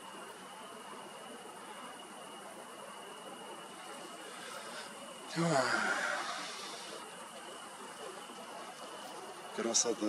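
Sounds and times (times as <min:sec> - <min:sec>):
crickets chirring: 0:00.0 - 0:10.0
soft hiss: 0:00.0 - 0:10.0.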